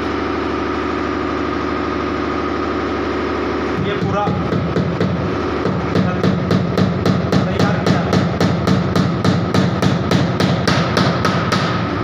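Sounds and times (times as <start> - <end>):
steady low hum: 0.0 - 12.0
hammer tapping nails: 4.0 - 11.8.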